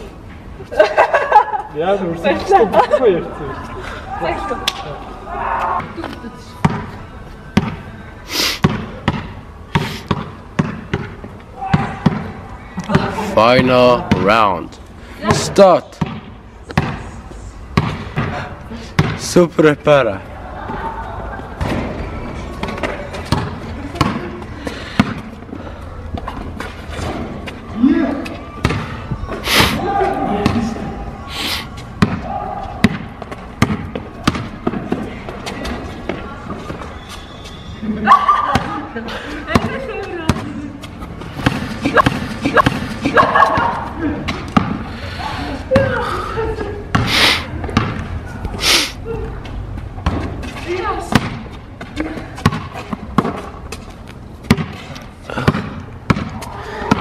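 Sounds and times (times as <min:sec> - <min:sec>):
players' voices: 0:00.0 - 0:10.3, 0:10.9 - 0:53.8
basketball bouncing on asphalt: 0:06.6 - 0:06.9, 0:07.5 - 0:07.8, 0:08.6 - 0:13.1, 0:15.3 - 0:17.0, 0:17.8 - 0:19.2, 0:22.6 - 0:25.5, 0:28.5 - 0:29.4, 0:30.0 - 0:30.8, 0:31.9 - 0:37.0, 0:38.4 - 0:38.8, 0:39.5 - 0:44.9, 0:46.8 - 0:48.6, 0:49.4 - 0:57.0
players' footsteps: 0:31.7 - 0:45.0, 0:49.2 - 0:57.0.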